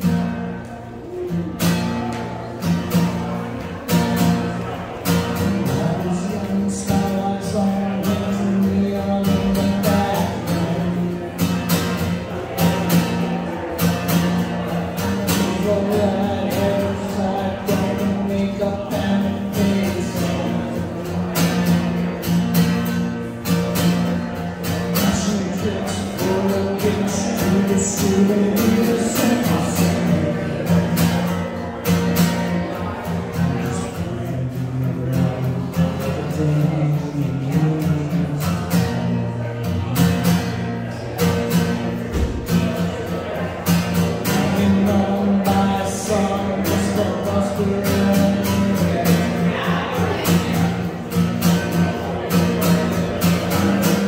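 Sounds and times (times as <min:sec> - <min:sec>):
strummed acoustic guitar: 0:00.0 - 0:54.0
man singing: 0:04.0 - 0:22.7, 0:23.5 - 0:54.0.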